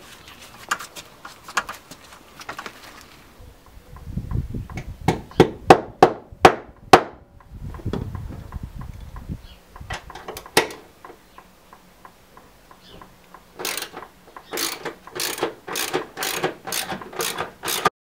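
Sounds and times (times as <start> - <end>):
socket wrench ratcheting: 13.6 - 17.9.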